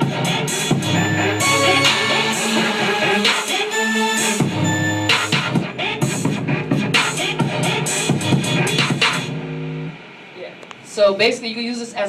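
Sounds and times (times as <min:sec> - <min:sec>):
electronic hip-hop beat: 0:00.0 - 0:10.1.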